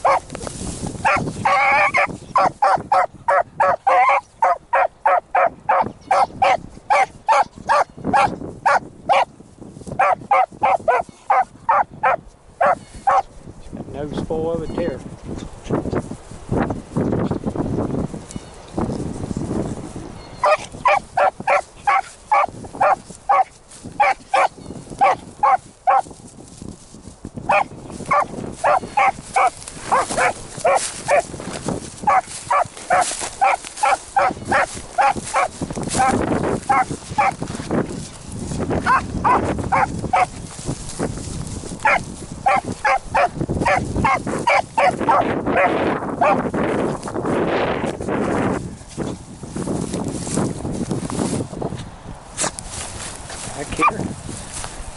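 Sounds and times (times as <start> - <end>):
dog baying and barking: 0.0 - 0.3, 1.0 - 9.3, 10.0 - 13.3, 20.4 - 26.1, 27.5 - 31.3, 32.0 - 37.4, 38.8 - 40.4, 41.8 - 46.4
wind on microphone: 0.0 - 54.9.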